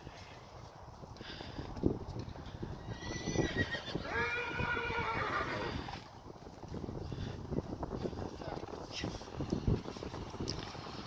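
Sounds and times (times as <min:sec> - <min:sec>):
muffled hoofbeats on sand: 0:00.0 - 0:11.0
horse whinnying: 0:02.8 - 0:06.0.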